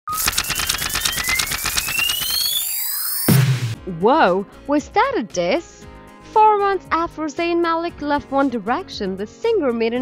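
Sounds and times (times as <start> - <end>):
thin rising whistling tones: 0.1 - 3.3.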